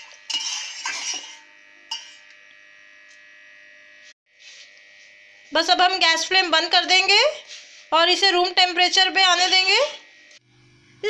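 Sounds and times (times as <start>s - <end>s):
metal spoon stirring in pot: 0.0s - 2.3s.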